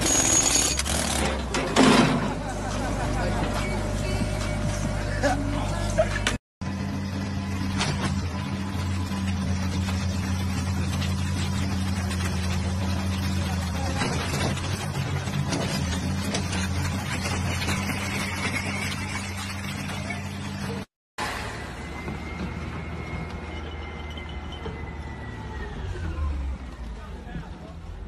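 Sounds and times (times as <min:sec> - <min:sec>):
excavator diesel engine drone: 0:00.0 - 0:28.0.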